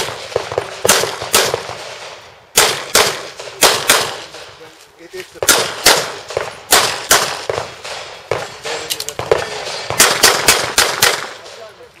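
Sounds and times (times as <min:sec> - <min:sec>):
handgun shots: 0:02.6 - 0:04.4, 0:05.4 - 0:11.5.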